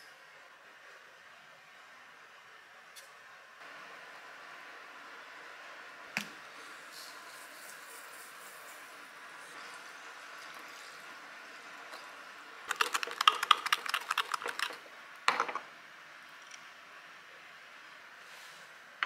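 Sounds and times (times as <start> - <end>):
seeds shaken from shaker: 12.7 - 14.8.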